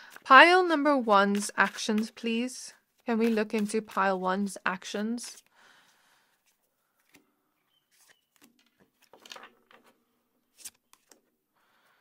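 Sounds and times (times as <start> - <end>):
cards shuffled on wooden table: 3.0 - 4.1, 6.4 - 7.3, 7.9 - 11.3.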